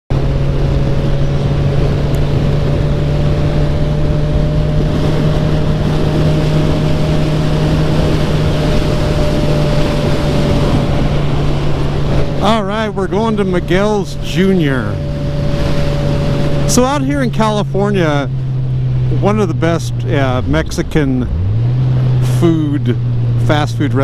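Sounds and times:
motorcycle engine cruising: 0.1 - 24.0
wind rushing on microphone: 0.2 - 23.4.

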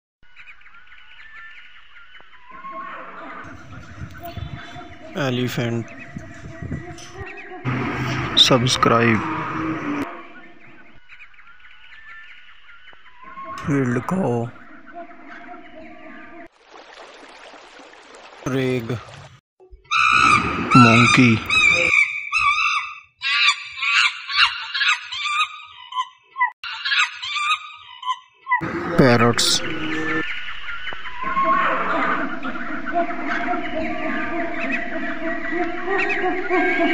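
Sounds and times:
birds chirping: 0.3 - 36.9
monkey chattering calls: 19.9 - 36.9.

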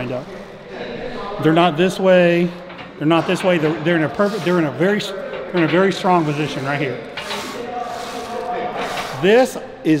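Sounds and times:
machine rubbing hiss: 4.0 - 5.0, 5.8 - 9.6.

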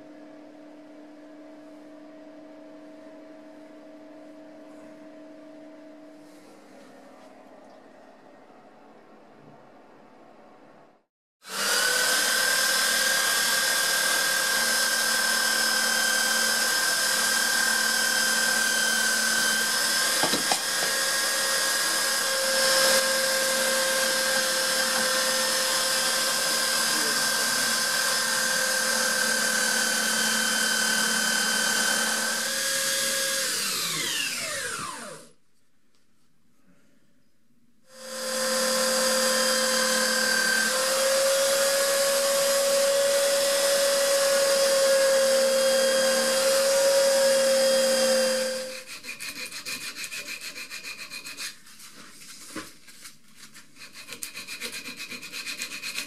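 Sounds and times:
electric belt sander running: 11.4 - 35.3, 37.9 - 48.7.

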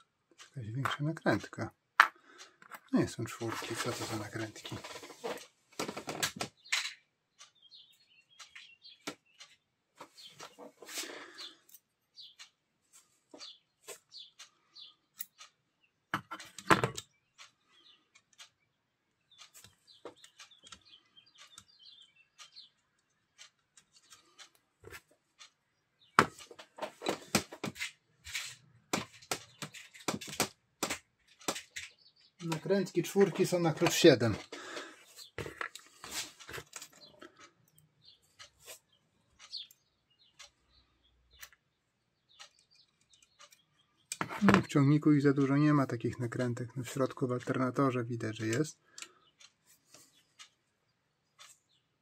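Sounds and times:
metal parts clicking and tapping: 4.8 - 7.6, 14.8 - 18.5, 26.2 - 38.5, 42.3 - 44.8
faint bird chirps: 6.6 - 16.0.

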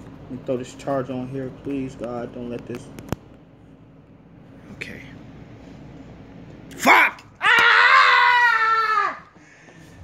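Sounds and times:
person yelping: 6.8 - 9.3.

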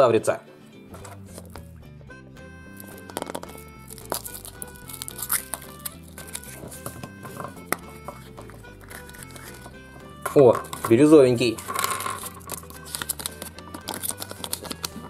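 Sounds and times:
soft background music: 0.0 - 15.0
foil wrapper crinkling: 2.8 - 15.0.

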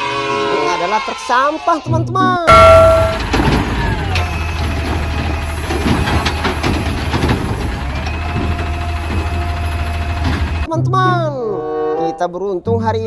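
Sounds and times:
bin knocking and clattering: 2.5 - 5.0
garbage truck engine idling: 2.5 - 10.7.

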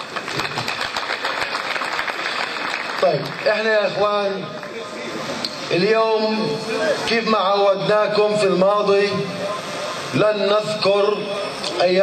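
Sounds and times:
crowd applauding: 0.0 - 5.3.

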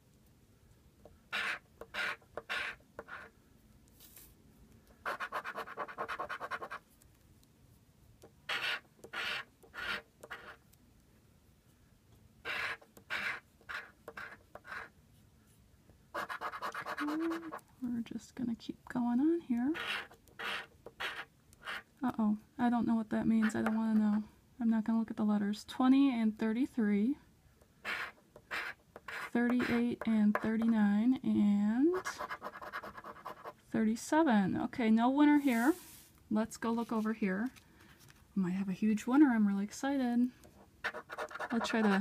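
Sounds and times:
coin scraping scratch card: 1.3 - 3.3, 5.0 - 6.8, 8.5 - 10.6, 12.4 - 14.9, 16.2 - 17.6, 19.7 - 21.9, 27.8 - 30.5, 40.8 - 42.0.

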